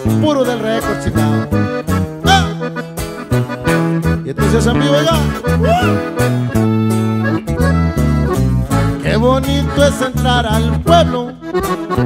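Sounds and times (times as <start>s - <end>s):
accordion band music: 0.0s - 12.0s
person singing: 4.4s - 6.1s.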